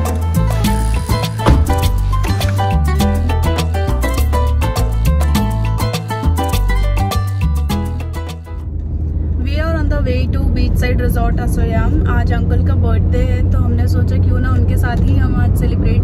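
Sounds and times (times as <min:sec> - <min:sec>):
car engine and road rumble: 0:00.0 - 0:03.4, 0:08.5 - 0:16.0
background music: 0:00.0 - 0:08.6.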